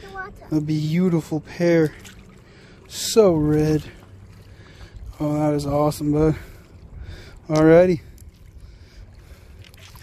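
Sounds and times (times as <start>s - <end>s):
low river rumble: 0.0s - 10.0s.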